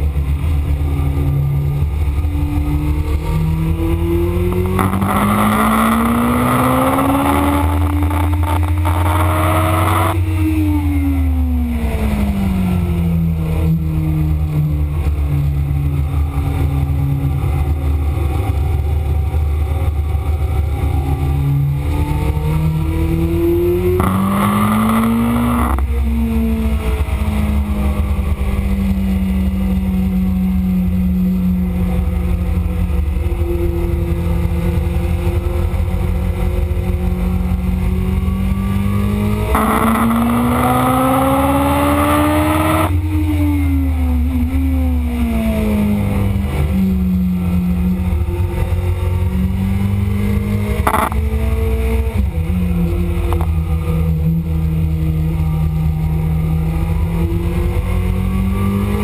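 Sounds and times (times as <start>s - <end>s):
motorcycle engine revving: 0.0s - 16.6s, 17.5s - 59.0s.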